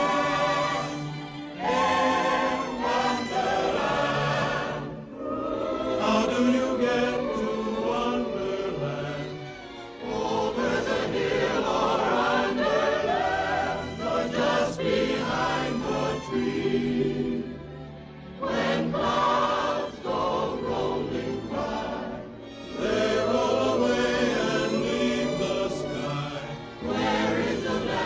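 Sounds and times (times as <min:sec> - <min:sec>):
choir singing with vibrato: 0:00.0 - 0:28.0.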